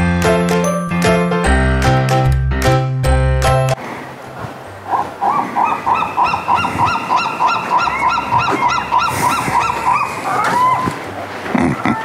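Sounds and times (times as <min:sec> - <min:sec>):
geese honking: 0:04.8 - 0:12.0.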